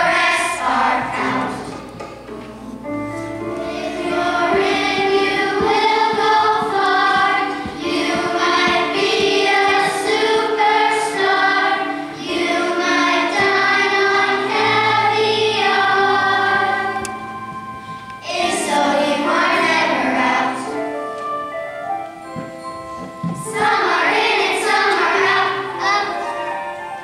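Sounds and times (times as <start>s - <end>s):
children's choir singing: 0.0s - 27.0s
singers breathing: 17.8s - 18.2s.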